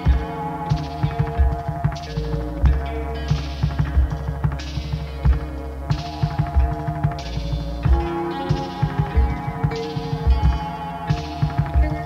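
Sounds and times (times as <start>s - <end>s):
electronic beat: 0.0s - 12.0s
held synth tones: 0.0s - 12.0s
minimal synth music: 0.0s - 12.0s.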